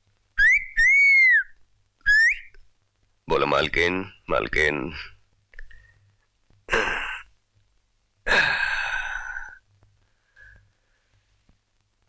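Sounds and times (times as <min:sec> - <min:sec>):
man sighing: 0:08.3 - 0:09.6.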